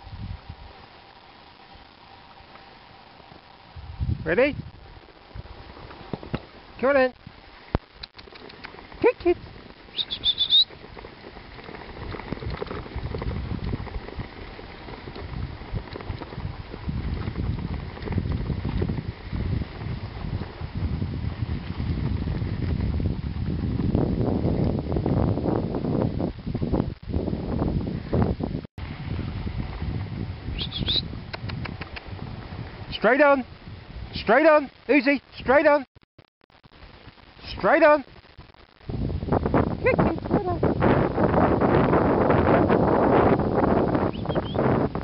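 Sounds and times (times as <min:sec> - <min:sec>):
wind on microphone: 0:00.0 - 0:00.9, 0:03.6 - 0:34.4, 0:38.1 - 0:45.0
sled rumbling over snow: 0:00.0 - 0:35.8, 0:36.8 - 0:45.0
brief high squeak: 0:10.0 - 0:10.7.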